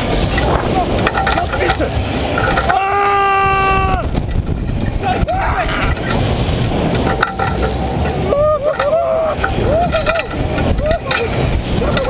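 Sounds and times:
wind rush on microphone: 0:00.0 - 0:12.0
riders yelling: 0:00.5 - 0:04.2, 0:04.9 - 0:06.1, 0:08.2 - 0:12.0.

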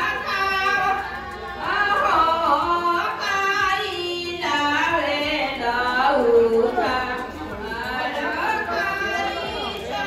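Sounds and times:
indistinct chatter: 0:00.0 - 0:10.0.

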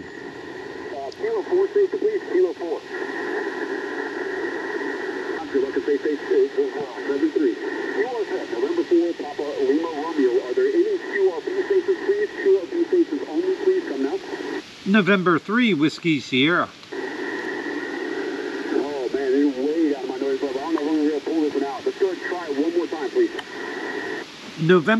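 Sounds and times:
narrow-band radio speech: 0:00.0 - 0:24.9
radio band noise hiss: 0:00.0 - 0:24.9.

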